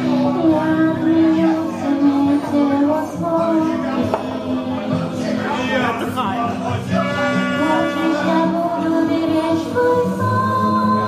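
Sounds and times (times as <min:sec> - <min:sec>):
woman singing: 0:00.0 - 0:05.4, 0:07.6 - 0:11.0
sustained musical accompaniment: 0:00.0 - 0:11.0.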